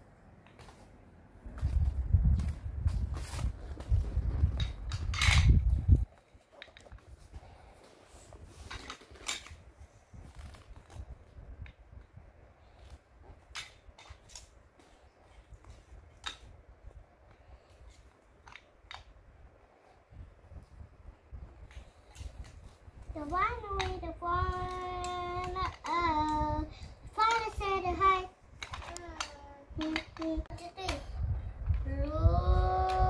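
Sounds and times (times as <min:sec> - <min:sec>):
toy blocks clicking: 0:28.6 - 0:31.0.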